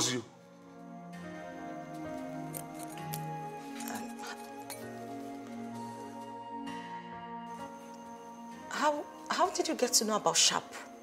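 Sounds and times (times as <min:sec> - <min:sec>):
film score with held notes: 0:00.0 - 0:11.0.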